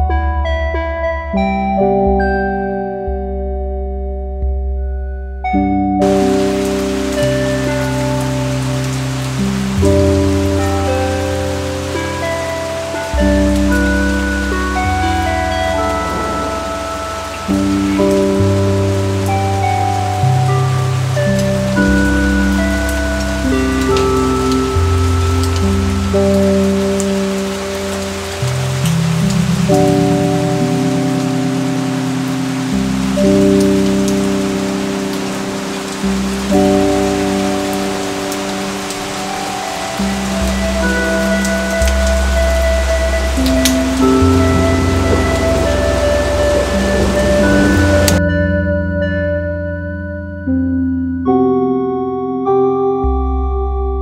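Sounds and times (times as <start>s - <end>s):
slow ambient music: 0.0s - 54.0s
steady rain falling: 6.0s - 48.2s.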